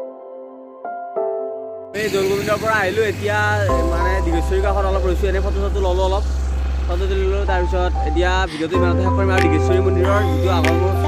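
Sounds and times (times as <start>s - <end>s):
man speaking: 2.0s - 6.3s.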